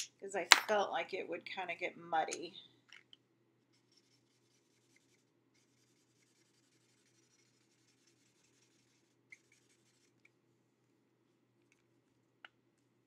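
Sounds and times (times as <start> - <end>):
marker scratching on card: 3.7 - 10.3.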